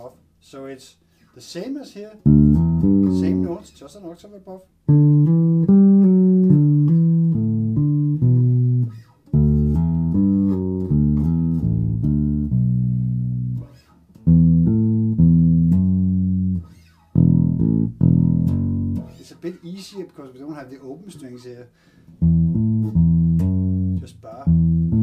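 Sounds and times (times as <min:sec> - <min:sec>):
electric bass funky groove: 0:02.3 - 0:03.6, 0:04.9 - 0:19.2, 0:22.2 - 0:25.0.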